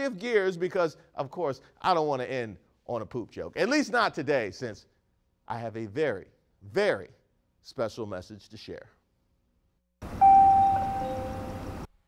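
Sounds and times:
two-note ding-dong chime: 10.2 - 11.6.

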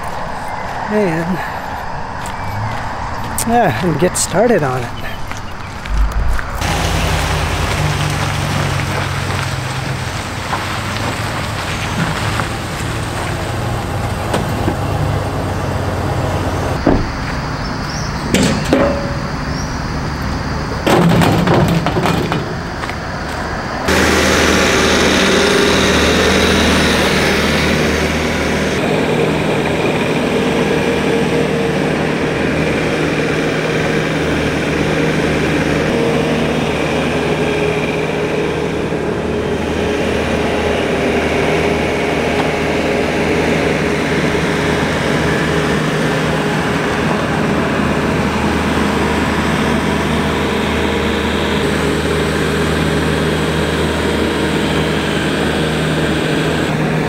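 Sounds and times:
loader diesel engine running: 0.0 - 57.0.

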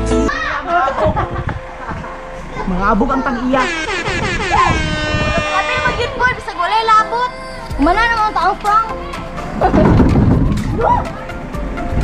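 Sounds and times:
people shrieking excitedly: 3.6 - 6.4, 10.7 - 11.2.

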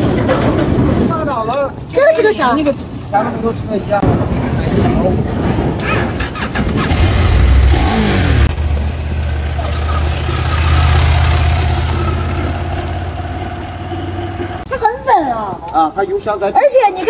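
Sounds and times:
motorcycle engine at low revs: 5.8 - 14.6.

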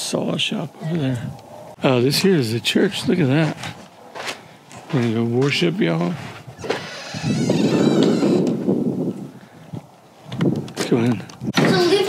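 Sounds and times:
wooden door creaking open: 6.6 - 8.6.

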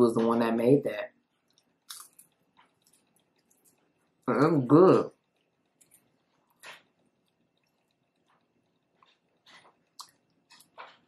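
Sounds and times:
chewing pizza crunch: 1.2 - 11.0.

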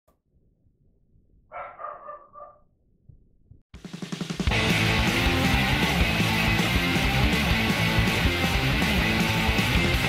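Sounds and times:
animal yelps: 1.5 - 2.6
music: 3.8 - 10.0.

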